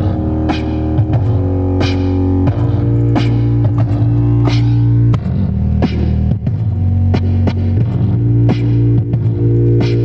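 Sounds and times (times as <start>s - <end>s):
synth bass line: 0.0s - 10.0s.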